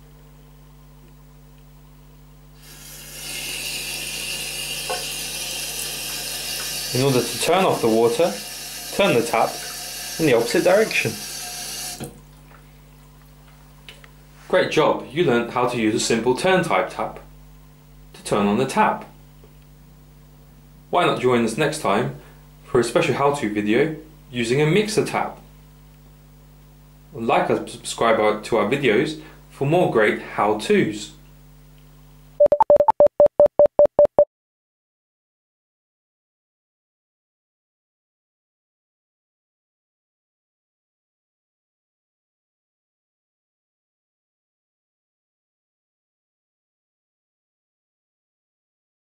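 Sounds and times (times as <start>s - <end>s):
tap water running into sink: 3.0s - 12.6s
short electronic beeps: 32.4s - 34.3s.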